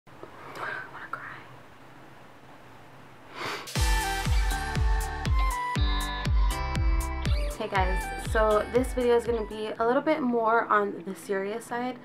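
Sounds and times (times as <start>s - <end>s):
woman whispering: 0.6s - 1.6s.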